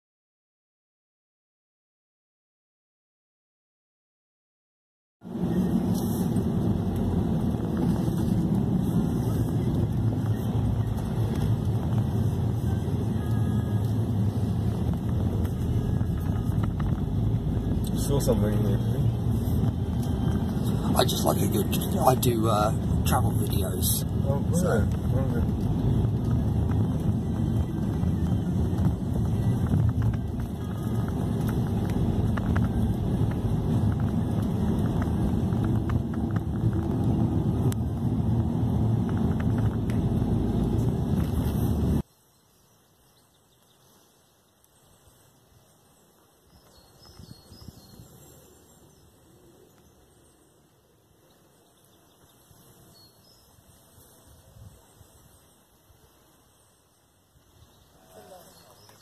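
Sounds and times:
car cabin road and engine noise: 0:05.2 - 0:42.1
quiet outdoor ambience: 0:05.2 - 0:59.0.

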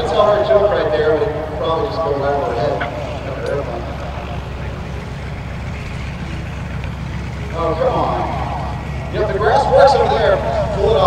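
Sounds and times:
plane engine and propeller running: 0:00.0 - 0:11.0.

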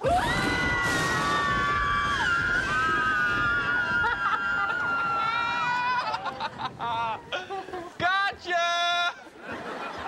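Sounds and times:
group screaming in fright: 0:00.0 - 0:06.3.

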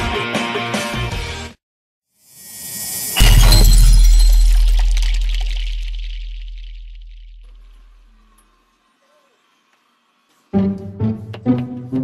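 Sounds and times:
sudden loud hit: 0:03.1 - 0:07.5.

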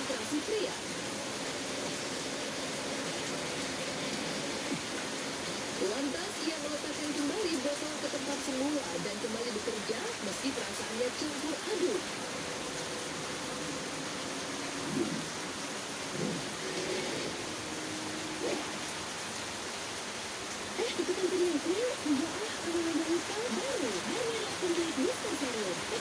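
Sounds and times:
muffled television audio: 0:00.0 - 0:15.4, 0:18.2 - 0:19.0, 0:20.6 - 0:26.0
steady hiss: 0:00.0 - 0:26.0.

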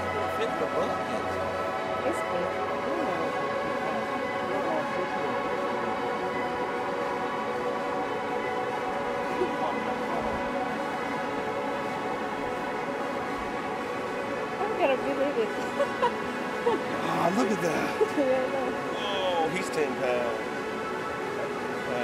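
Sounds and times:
faint voices: 0:00.0 - 0:08.0, 0:09.0 - 0:12.6, 0:14.6 - 0:20.6
steady droning hum: 0:00.0 - 0:22.0.

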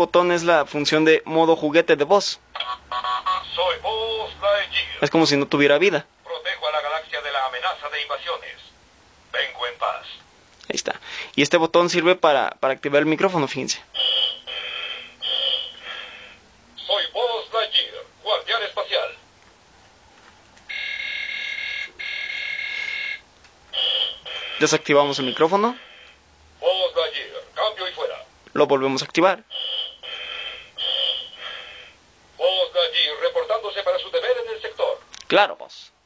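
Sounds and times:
toy speaker electronic tone: 0:02.6 - 0:04.2, 0:14.0 - 0:16.3, 0:20.7 - 0:26.1, 0:29.5 - 0:31.9
radio static hiss with whistle: 0:14.0 - 0:17.8, 0:23.8 - 0:26.2, 0:29.5 - 0:34.8.

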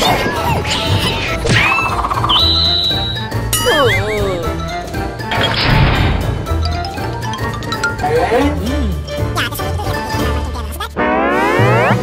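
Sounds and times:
background music: 0:00.0 - 0:12.0
rising whistle: 0:01.6 - 0:04.1.

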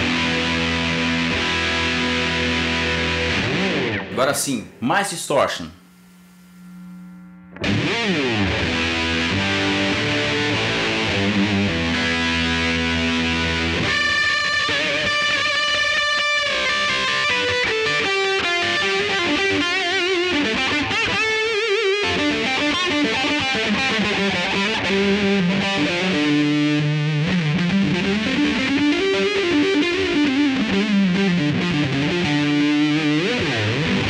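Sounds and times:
distorted electric guitar riffs: 0:00.0 - 0:34.0.

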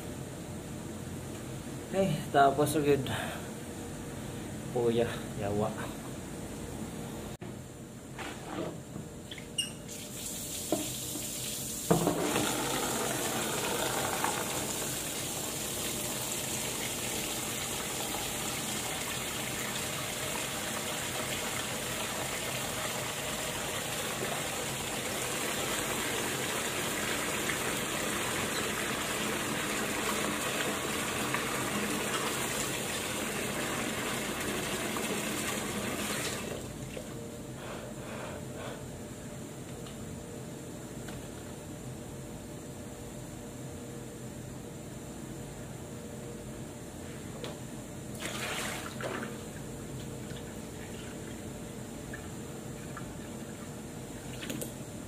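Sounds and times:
water running into sink: 0:09.9 - 0:36.6.

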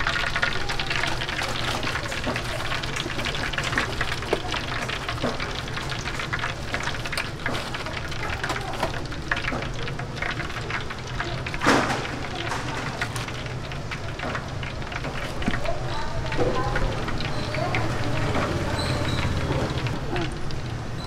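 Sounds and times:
oil sizzling in deep fryer: 0:00.0 - 0:21.0.

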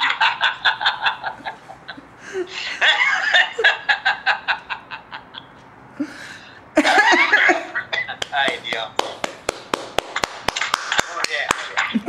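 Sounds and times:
hand clapping: 0:08.1 - 0:12.0.

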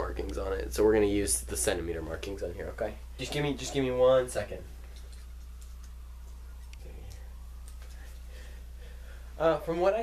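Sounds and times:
low electrical hum: 0:00.0 - 0:10.0
light ticks and clicks: 0:00.2 - 0:00.5.

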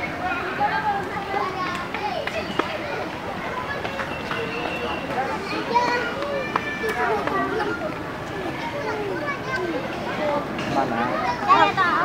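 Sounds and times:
chatter of many people: 0:00.0 - 0:12.0
children's voices: 0:00.0 - 0:12.0.

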